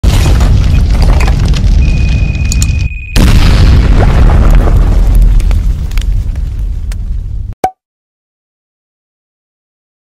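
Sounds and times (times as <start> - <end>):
low explosion booms: 0.0 - 7.5.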